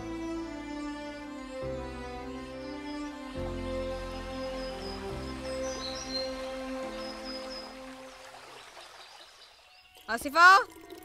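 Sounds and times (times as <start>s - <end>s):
soft music of held chords: 0.0s - 8.2s.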